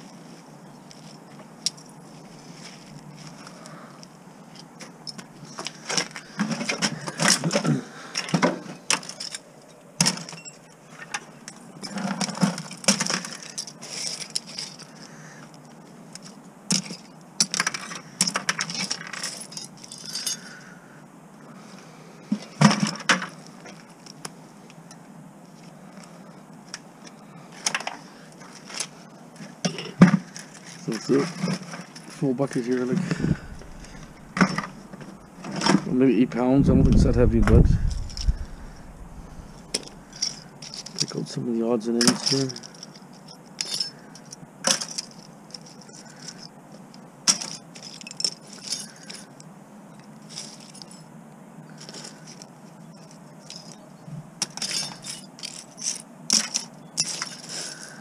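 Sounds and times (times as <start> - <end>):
scrap metal clinking into buckets: 11.8 - 14.8, 29.7 - 35.8, 42.0 - 42.8, 54.4 - 58.0.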